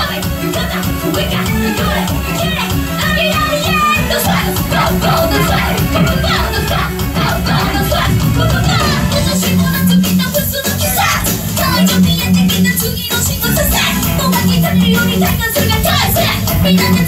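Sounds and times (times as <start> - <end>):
drums: 0.0 - 17.0
electric bass: 0.0 - 17.0
women singing into microphones: 0.0 - 17.0.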